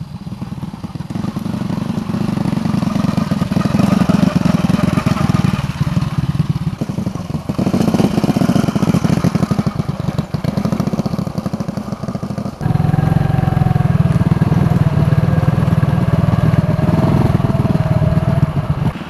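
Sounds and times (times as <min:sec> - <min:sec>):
motorcycle engine running: 0:00.0 - 0:19.0.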